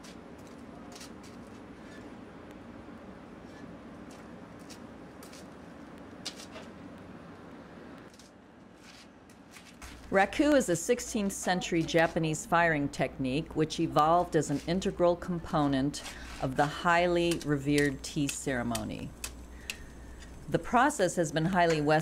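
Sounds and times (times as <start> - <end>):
faint outdoor hum: 0.0 - 22.0.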